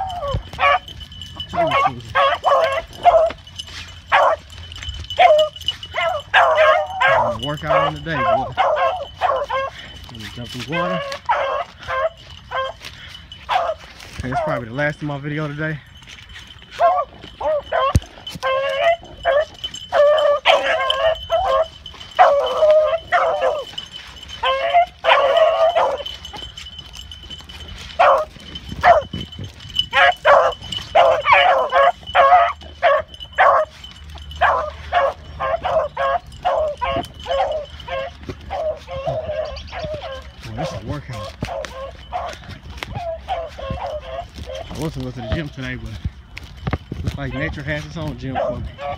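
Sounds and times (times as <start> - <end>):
dogs barking: 0.0 - 48.9
hounds baying: 0.0 - 48.9.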